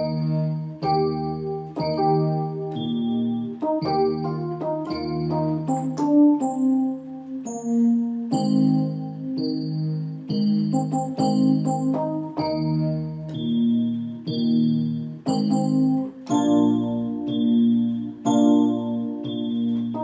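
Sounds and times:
electronic keyboard chords: 0.0 - 20.0.

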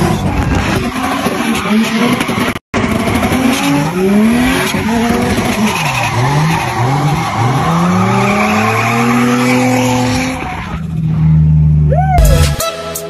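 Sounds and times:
car engine revving: 0.0 - 11.9
tyres skidding: 0.0 - 11.9.

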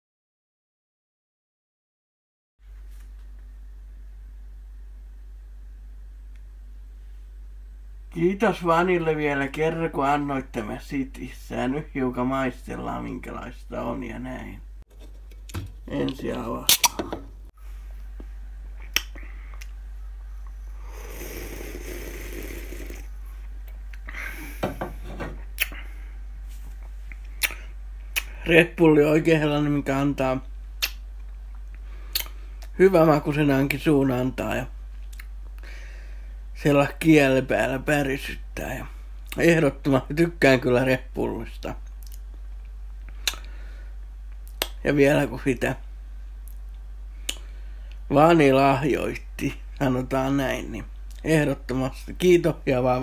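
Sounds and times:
steady low hum: 2.6 - 53.0
lip smack: 18.8 - 19.8, 25.6 - 25.8, 27.1 - 28.4, 30.8 - 31.0, 31.6 - 32.7, 43.1 - 43.5, 44.5 - 44.8, 47.2 - 47.5
sipping and swallowing: 20.5 - 23.1.

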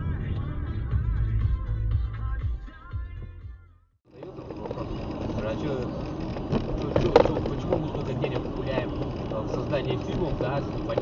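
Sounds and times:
road and engine noise: 0.0 - 3.3, 4.0 - 11.0.

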